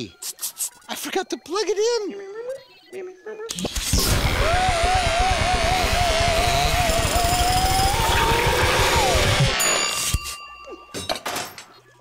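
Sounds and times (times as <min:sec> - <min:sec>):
machine rattling buzz: 0:03.9 - 0:09.2
wavering wail: 0:04.3 - 0:09.6.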